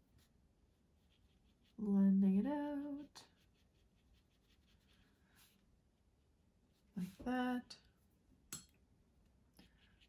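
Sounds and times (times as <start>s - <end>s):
brush scratching on paper: 0.0s - 5.7s, 9.6s - 10.0s.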